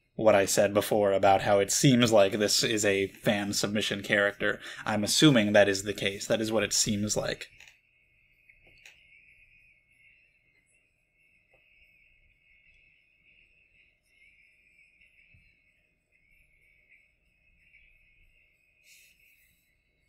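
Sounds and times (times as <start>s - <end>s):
faint high-pitched tone: 0.0s - 20.0s.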